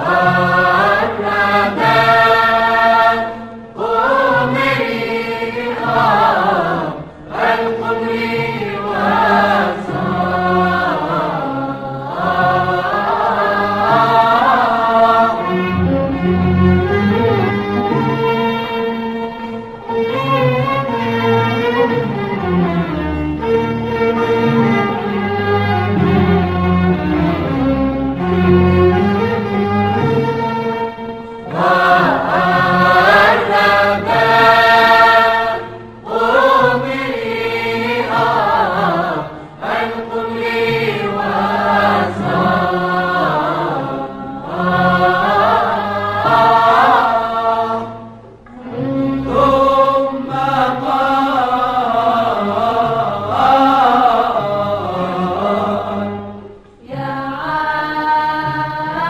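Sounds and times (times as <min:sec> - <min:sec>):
instrumental accompaniment: 0:00.0 - 0:59.0.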